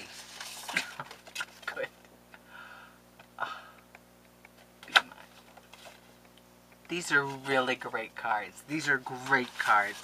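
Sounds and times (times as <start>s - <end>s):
paper cards handled: 0.0s - 1.8s, 4.6s - 6.2s, 9.0s - 10.0s.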